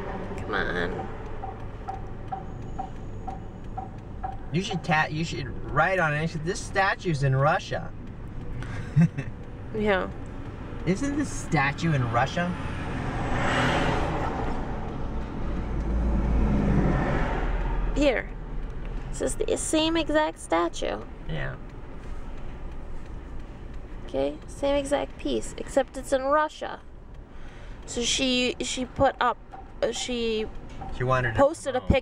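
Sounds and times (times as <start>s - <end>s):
car engine rumble: 0.0s - 32.0s
turn signal ticking: 0.0s - 32.0s.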